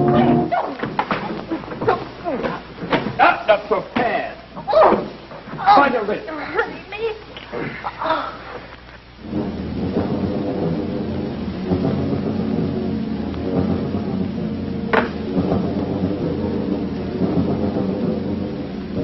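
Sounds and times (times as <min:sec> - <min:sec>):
sharp crack: 0:14.2 - 0:15.5.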